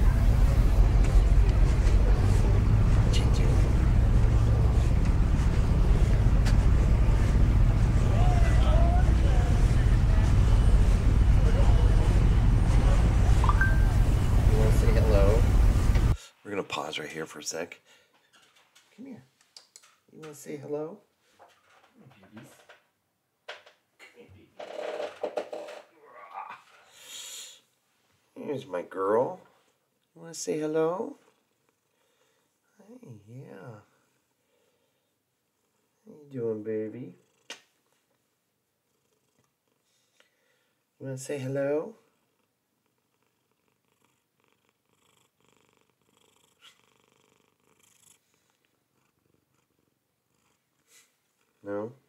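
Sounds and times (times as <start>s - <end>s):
cat purring: 37.1s - 37.8s, 38.8s - 40.1s, 42.0s - 52.0s.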